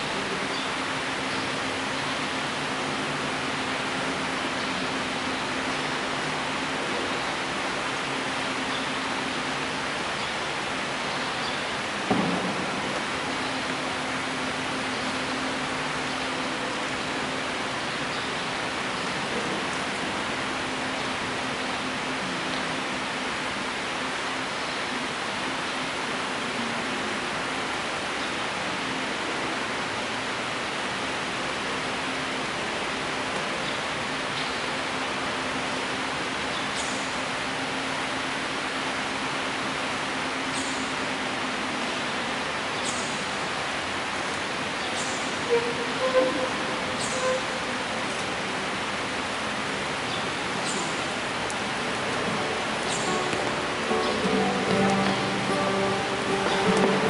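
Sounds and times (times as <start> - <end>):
even hiss: 0.0 - 57.0
faint steady hum: 0.0 - 57.0.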